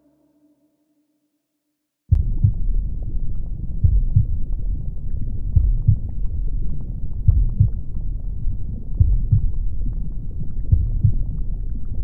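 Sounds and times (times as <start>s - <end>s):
deep uneven rumbling: 2.1s - 12.0s.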